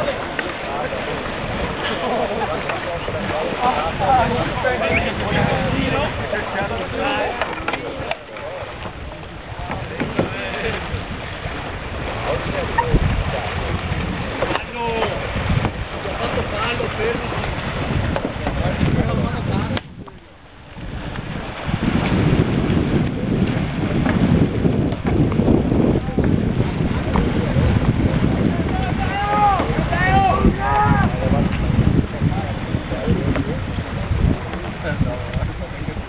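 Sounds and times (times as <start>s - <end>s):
wind rumbling on microphone: 0.0s - 36.0s.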